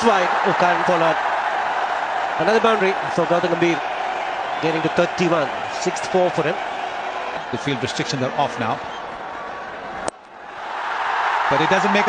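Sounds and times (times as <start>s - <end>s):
crowd cheering: 0.0s - 12.0s
stadium crowd noise: 0.0s - 12.0s.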